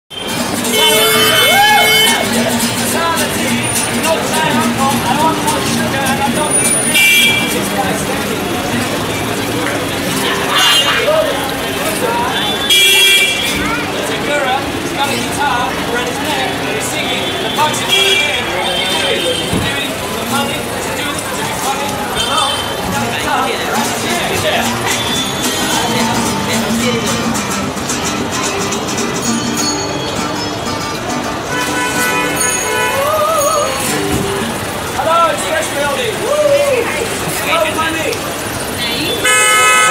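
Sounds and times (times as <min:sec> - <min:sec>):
vehicle horn: 0:00.1 - 0:02.4, 0:06.6 - 0:07.6, 0:12.3 - 0:13.6, 0:17.1 - 0:19.6, 0:31.4 - 0:33.2, 0:39.0 - 0:39.9
acoustic guitar strummed: 0:00.1 - 0:35.0
street traffic noise: 0:00.1 - 0:39.9
man singing: 0:25.7 - 0:27.4, 0:32.9 - 0:34.0.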